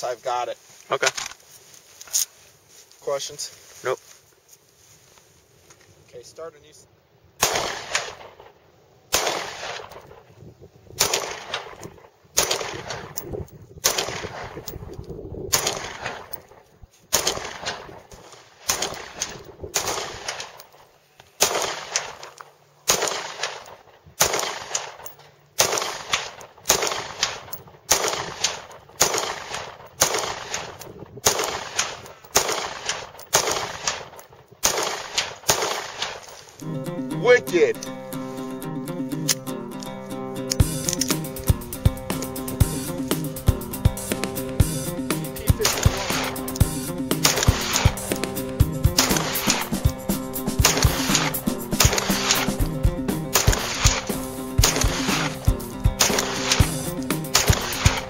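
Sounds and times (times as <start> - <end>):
pistol shots echoing: 7.4 - 10.2, 11.0 - 14.7, 15.5 - 20.7, 21.4 - 36.3, 45.6 - 49.8, 50.5 - 52.6, 53.3 - 58.0.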